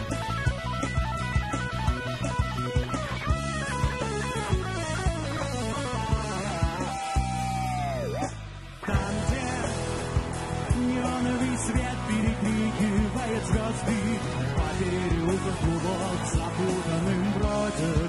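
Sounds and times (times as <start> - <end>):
steady drum beat: 0.0 - 7.7, 8.9 - 18.0
bass guitar: 0.0 - 18.0
electric guitar lines: 0.0 - 18.0.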